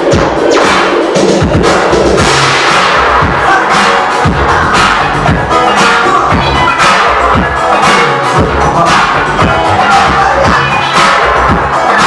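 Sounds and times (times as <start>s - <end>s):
heavy kick drum: 0.0s - 0.6s, 1.2s - 5.7s, 6.3s - 7.6s, 8.4s - 10.8s, 11.4s - 11.8s
loud dance music: 0.0s - 12.0s.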